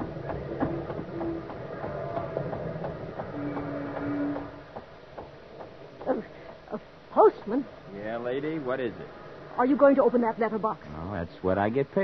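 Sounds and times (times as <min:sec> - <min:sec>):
long horn tones: 0:03.2 - 0:04.7.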